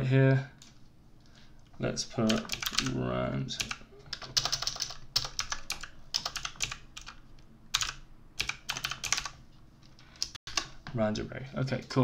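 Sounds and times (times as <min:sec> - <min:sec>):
typing on computer keyboard: 0:02.3 - 0:03.0, 0:03.6 - 0:07.2, 0:07.8 - 0:09.4.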